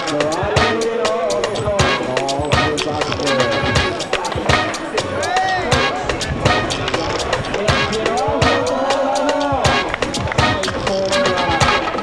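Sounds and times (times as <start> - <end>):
music: 0.0 - 12.0
skateboard clacks: 1.4 - 12.0.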